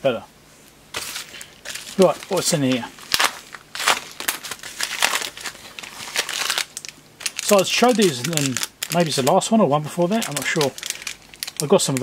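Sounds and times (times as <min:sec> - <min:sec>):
plastic packaging crinkling: 0:00.9 - 0:12.0.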